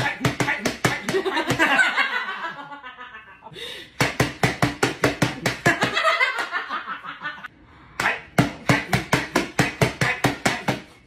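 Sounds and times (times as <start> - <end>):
hands slapping on countertop: 4.0 - 6.0.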